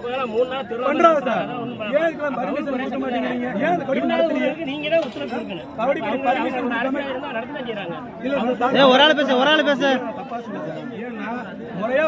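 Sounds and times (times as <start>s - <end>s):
men arguing: 0.0s - 12.0s.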